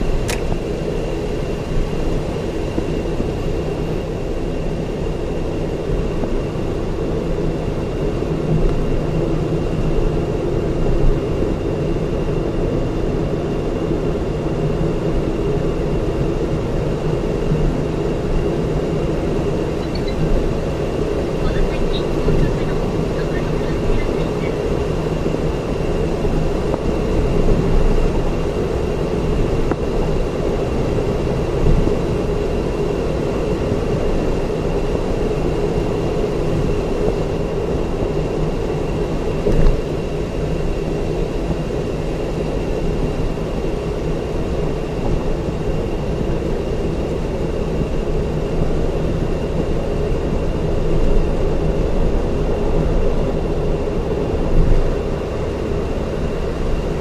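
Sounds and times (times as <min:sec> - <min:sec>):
tyre and engine rumble in car: 0:00.0 - 0:57.0
faint high whine: 0:13.5 - 0:49.5.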